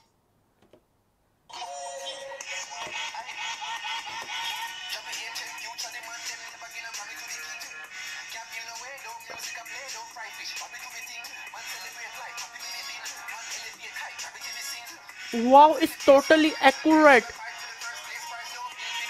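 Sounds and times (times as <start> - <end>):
song with vocals from phone speaker: 1.5 - 19.0.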